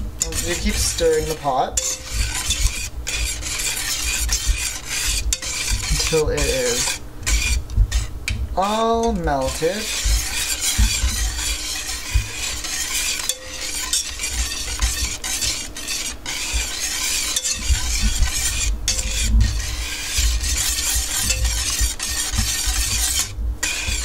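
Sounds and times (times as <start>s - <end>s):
wire whisk scraping metal pot: 0.0s - 24.0s.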